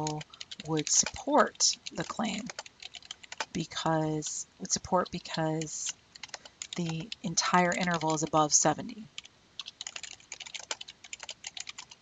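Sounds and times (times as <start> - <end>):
keyboard typing: 0.0 - 8.6, 9.2 - 12.0.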